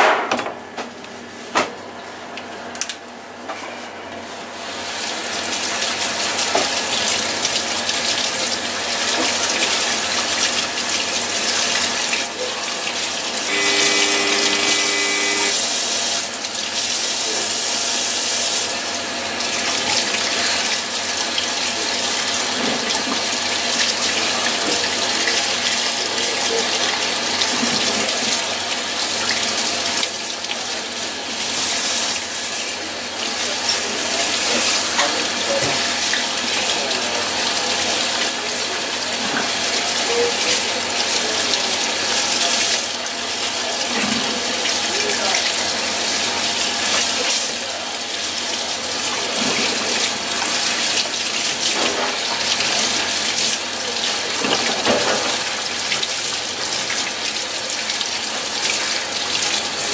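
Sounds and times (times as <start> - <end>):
faucet running into steel sink: 4.8 - 59.9
steady tone: 13.5 - 15.6.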